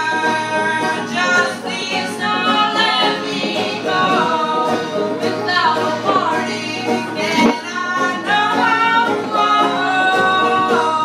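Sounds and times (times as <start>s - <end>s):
banjo accompaniment: 0.0s - 11.0s
women singing together: 0.0s - 11.0s.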